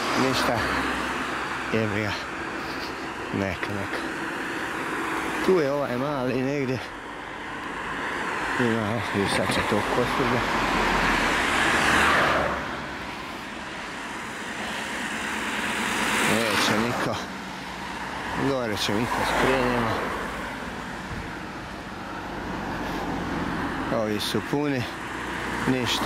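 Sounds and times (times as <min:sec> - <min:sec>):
cars passing on a road: 0:00.0 - 0:26.0.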